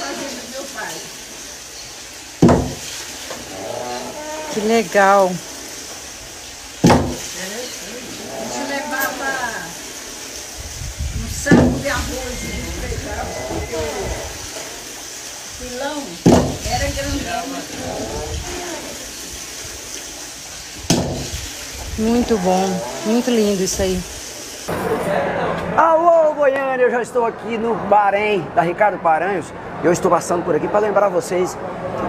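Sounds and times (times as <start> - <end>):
water running: 0.0 - 24.8
wooden knock: 2.4 - 2.8, 6.8 - 7.2, 11.5 - 11.8, 16.3 - 16.6, 20.9 - 21.2.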